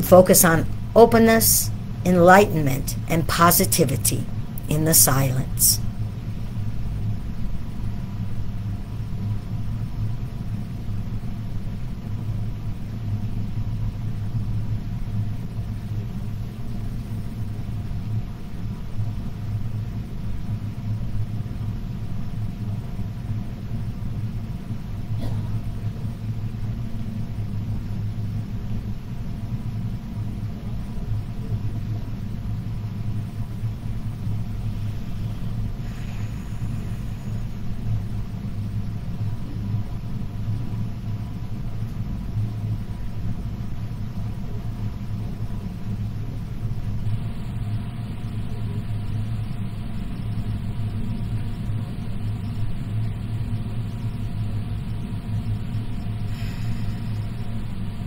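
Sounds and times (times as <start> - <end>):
low rumble with hum: 0.0 - 58.0.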